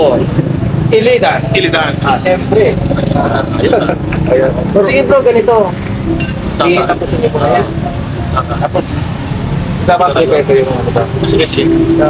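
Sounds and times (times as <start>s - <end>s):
low rumble of road traffic: 0.0s - 12.0s
men talking: 0.0s - 12.0s.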